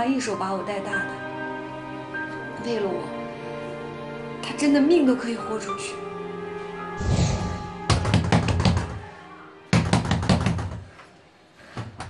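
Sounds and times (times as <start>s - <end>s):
pounding on a door: 9.7s - 10.9s.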